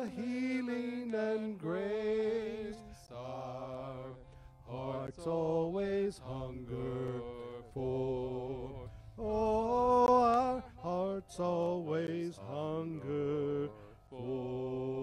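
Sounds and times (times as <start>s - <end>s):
keyboard accompaniment: 0.0s - 15.0s
men singing church song: 0.0s - 15.0s.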